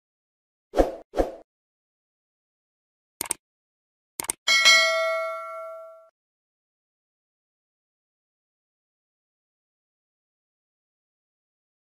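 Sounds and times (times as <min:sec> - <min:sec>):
notification bell ding: 0:04.5 - 0:06.1.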